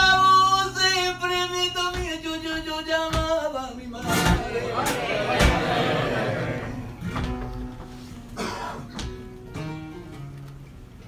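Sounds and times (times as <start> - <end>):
flamenco guitar playing: 0.0 - 11.0.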